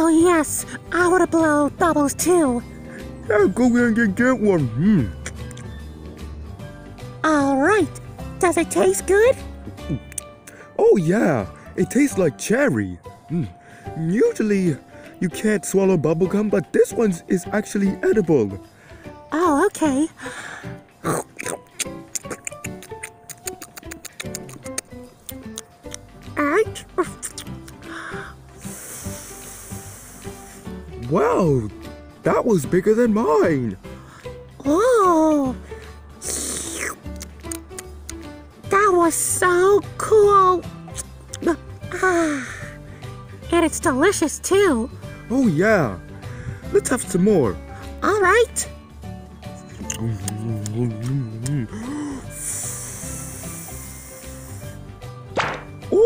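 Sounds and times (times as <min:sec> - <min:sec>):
background music: 0:00.0 - 0:56.0
bubblegum bubble blowing hiss: 0:27.2 - 0:30.9, 0:36.2 - 0:37.9, 0:51.9 - 0:54.9.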